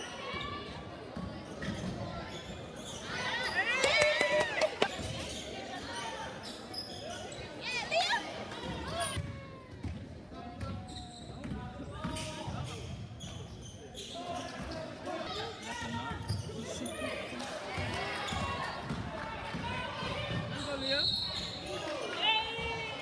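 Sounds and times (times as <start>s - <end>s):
sneakers squeaking: 0.2s - 3.9s, 4.8s - 8.1s, 10.6s - 17.2s, 17.8s - 22.9s.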